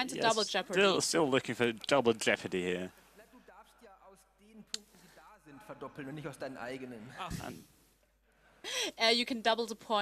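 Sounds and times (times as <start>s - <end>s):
person speaking: 0.0s - 7.7s.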